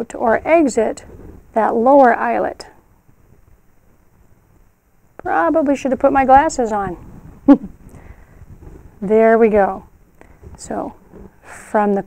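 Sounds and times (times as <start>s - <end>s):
faint handling noise: 0.0s - 12.0s.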